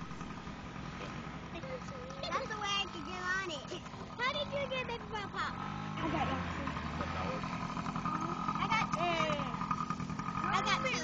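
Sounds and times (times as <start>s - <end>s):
distant dirt bike engine: 0.0s - 11.0s
people talking: 1.6s - 7.5s, 8.1s - 9.6s, 10.4s - 11.0s.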